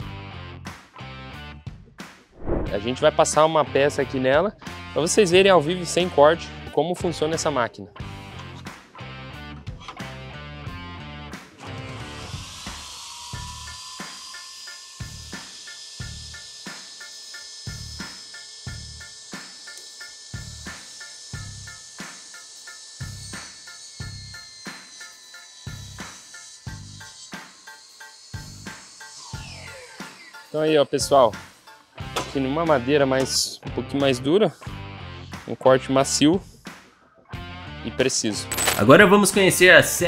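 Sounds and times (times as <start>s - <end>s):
saw cutting board: 11.4s - 33.3s
table saw whining: 11.4s - 33.4s.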